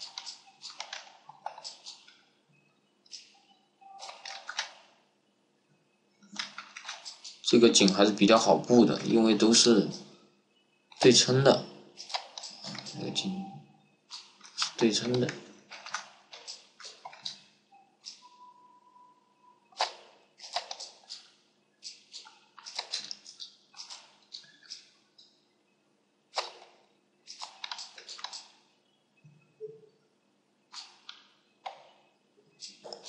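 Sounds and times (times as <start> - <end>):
computer mouse clicks: 0.0 - 2.2, 3.1 - 4.8, 6.2 - 8.0, 12.0 - 13.1, 14.1 - 17.4, 19.8 - 24.9, 27.3 - 28.6
scroll wheel ticks: 0.0 - 2.2, 27.3 - 28.6
faint computer hum: 0.0 - 33.0
faint held tone: 12.8 - 13.8, 17.7 - 19.8.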